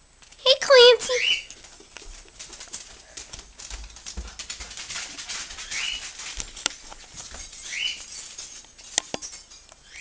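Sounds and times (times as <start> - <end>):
dog claws clicking on tiles: 1.4 - 9.8.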